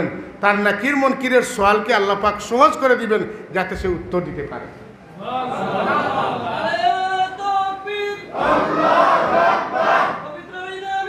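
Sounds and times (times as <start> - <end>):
chanted recitation: 5.2 - 11.0.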